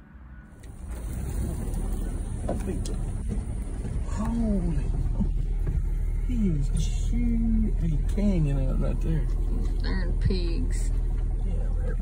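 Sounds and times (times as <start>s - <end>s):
vehicle driving off-road rumble: 0.0s - 12.0s.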